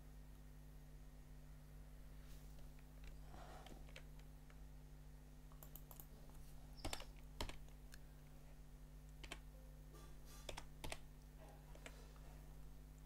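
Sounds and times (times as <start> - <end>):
steady low hum: 0.0 - 13.0
keyboard keystrokes clicking: 3.8 - 4.3, 5.5 - 6.1, 6.8 - 7.8, 9.1 - 9.5, 10.4 - 11.0.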